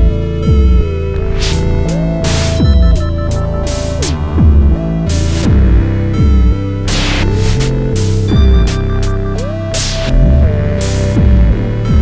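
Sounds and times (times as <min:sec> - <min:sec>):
deep synth bass: 0:00.0 - 0:12.0
synth notes with pitch glides: 0:00.0 - 0:12.0
synthesized drums: 0:00.0 - 0:12.0.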